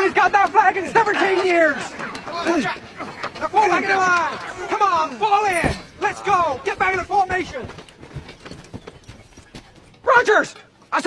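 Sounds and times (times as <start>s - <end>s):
footsteps jogging on dirt: 4.2s - 10.7s.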